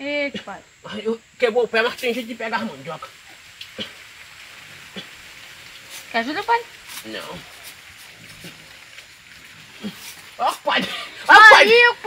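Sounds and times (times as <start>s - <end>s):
low grunt: 3.7s - 4.0s, 9.7s - 11.1s
scraping of dry soil: 4.9s - 10.8s.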